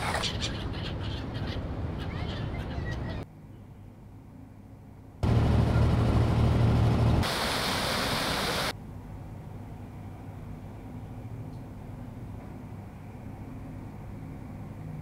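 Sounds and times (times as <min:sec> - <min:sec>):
gulls calling: 0:00.0 - 0:03.3
low rumble of traffic: 0:00.0 - 0:15.0
steady hiss: 0:07.2 - 0:08.8.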